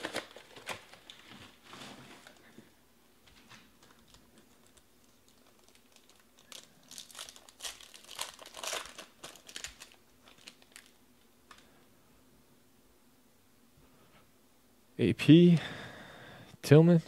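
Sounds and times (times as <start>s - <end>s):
foil wrapper tearing and crinkling: 0.0s - 1.4s, 3.8s - 11.6s.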